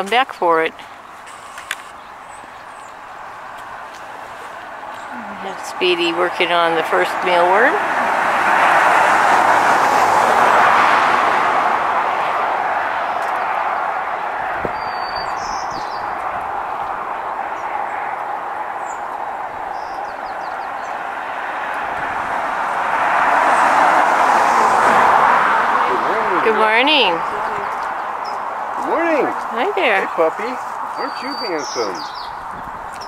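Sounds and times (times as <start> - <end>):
road traffic rushing: 0.0 - 33.0
high bird chirp: 14.6 - 16.3, 30.0 - 33.0.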